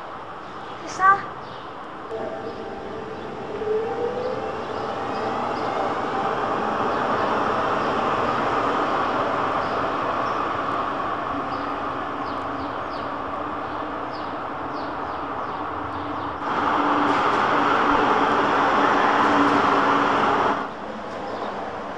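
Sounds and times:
tram motor whine: 0:02.0 - 0:21.9.

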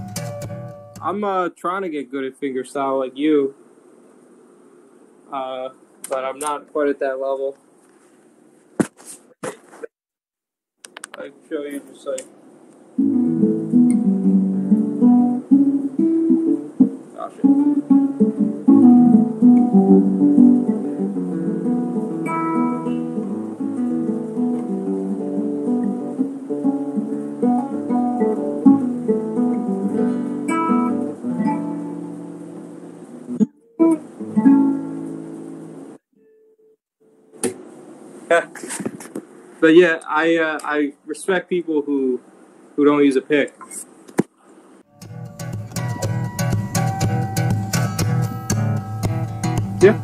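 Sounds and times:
acoustic guitar playing: 0:00.0 - 0:01.1, 0:13.0 - 0:37.6, 0:44.9 - 0:50.0.

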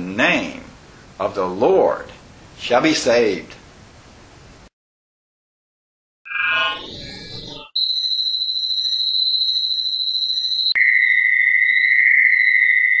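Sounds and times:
high-pitched electronic tone: 0:06.3 - 0:13.0.

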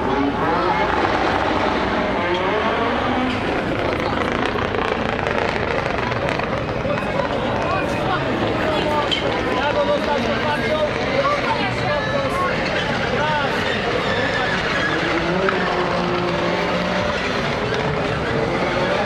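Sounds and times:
race car engines revving hard: 0:00.0 - 0:19.0.

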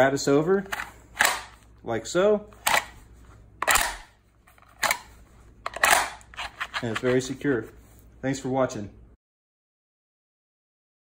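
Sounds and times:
plastic holster clicks and snaps: 0:01.2 - 0:01.6, 0:03.6 - 0:04.1, 0:05.7 - 0:06.3.

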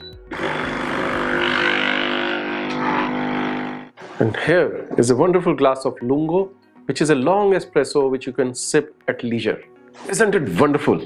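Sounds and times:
coffee machine pump humming: 0:00.3 - 0:04.2.

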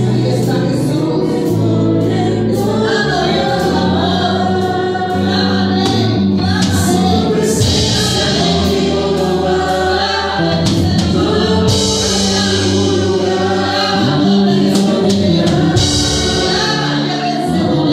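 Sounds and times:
electric bass: 0:00.0 - 0:17.9
woman singing into a microphone: 0:00.0 - 0:17.9
drum kit with cymbals: 0:04.6 - 0:17.9.

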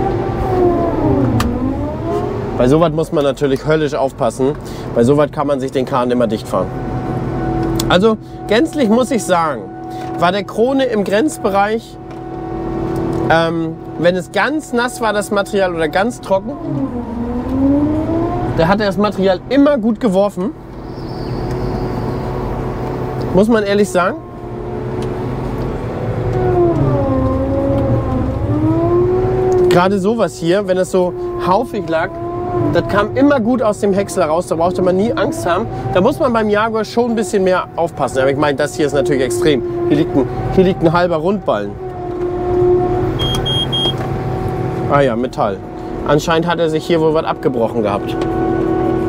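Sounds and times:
harvester engine drone: 0:00.0 - 0:49.0
short high alarm beeps: 0:43.2 - 0:44.0.

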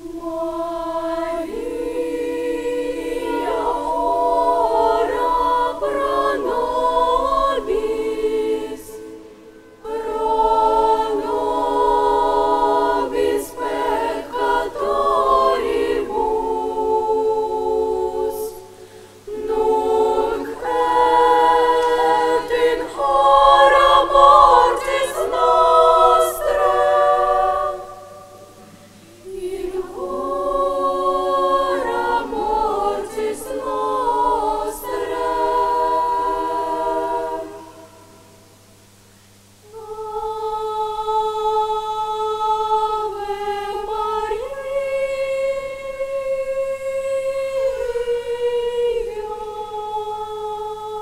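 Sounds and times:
children's choir singing: 0:00.0 - 0:39.0, 0:39.6 - 0:51.0.

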